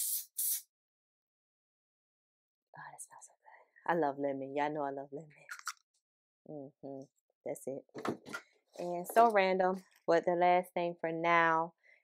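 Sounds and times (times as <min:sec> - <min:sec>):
aerosol spray can hissing: 0:00.0 - 0:00.7.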